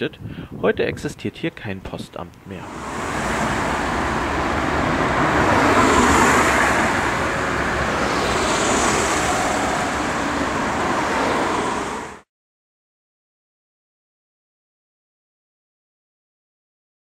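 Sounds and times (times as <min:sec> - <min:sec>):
cars passing on street: 0:02.6 - 0:12.3.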